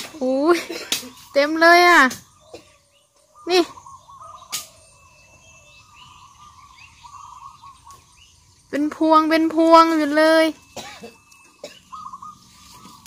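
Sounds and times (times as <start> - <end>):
faint bird chirps: 0.1 - 13.0.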